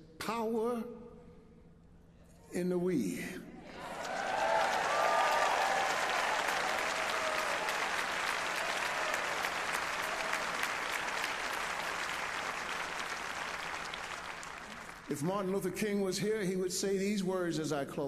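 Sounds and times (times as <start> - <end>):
audience applauding: 3.7 - 15.2.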